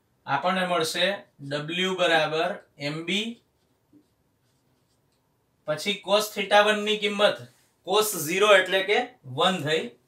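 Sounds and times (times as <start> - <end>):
marker pen writing on whiteboard: 3.3 - 5.4.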